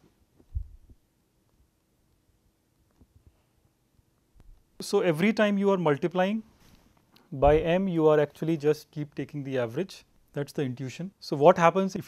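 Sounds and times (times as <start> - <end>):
low dull thump: 7.4 - 7.8.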